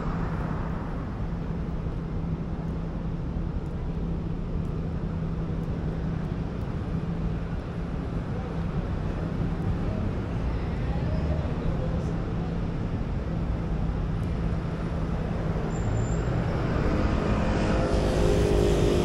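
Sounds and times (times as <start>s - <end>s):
rumble of passing cars: 0.0s - 19.0s
approaching vehicle engine: 15.3s - 19.0s.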